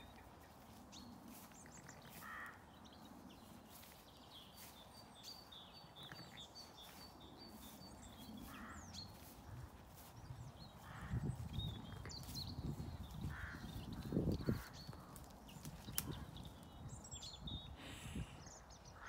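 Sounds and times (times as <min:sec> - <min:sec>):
birds chirping and whistling: 0:03.8 - 0:18.9
harsh bird calls: 0:05.3 - 0:19.0.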